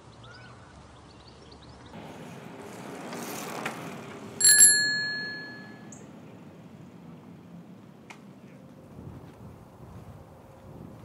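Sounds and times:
bicycle bell ringing: 4.4 - 5.9.

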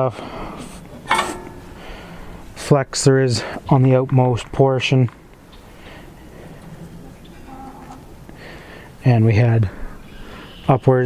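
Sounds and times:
metal bar clinking on metal: 1.1 - 1.7.

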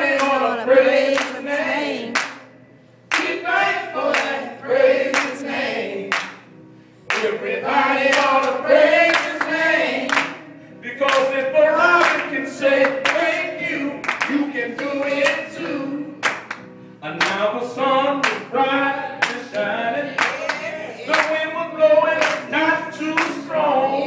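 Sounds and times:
gospel singing: 0.0 - 24.0
hands clapping: 0.1 - 0.4, 1.1 - 1.4, 2.1 - 2.5, 3.1 - 3.4, 4.0 - 4.4, 5.1 - 5.4, 6.1 - 10.4, 11.0 - 11.4, 12.0 - 13.4, 14.0 - 17.5, 18.2 - 18.5, 19.2 - 21.5, 22.2 - 22.5, 23.1 - 23.6.

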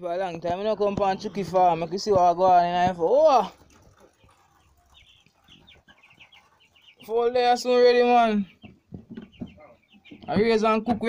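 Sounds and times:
chickens peeping: 0.1 - 11.0.

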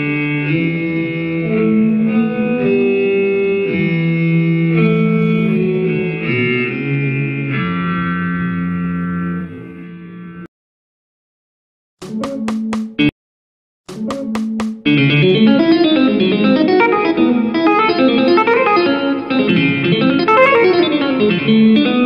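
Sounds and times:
electric guitar jazz improvisation: 0.0 - 10.5, 14.3 - 22.0.

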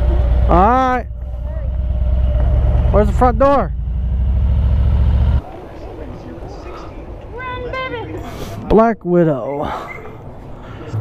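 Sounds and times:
motorcycle engine idling: 0.0 - 5.4.

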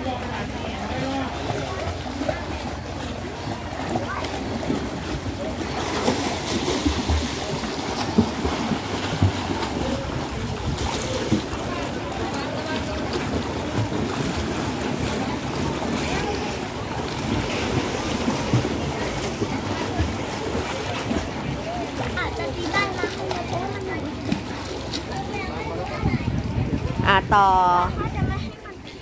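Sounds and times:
small water splashes: 0.0 - 28.9
pool water wash: 0.0 - 29.0.

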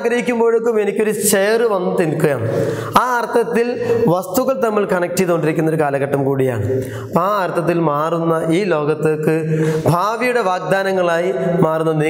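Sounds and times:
man lecturing: 0.0 - 12.0.

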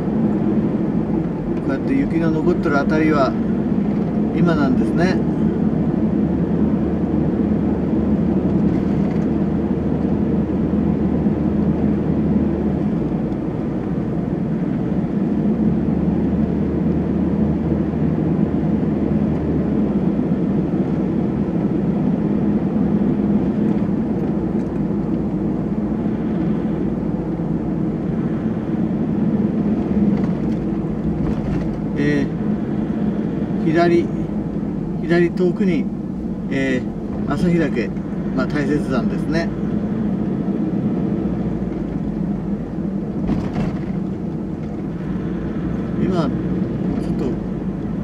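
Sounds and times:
van engine and road noise: 0.0 - 48.0.

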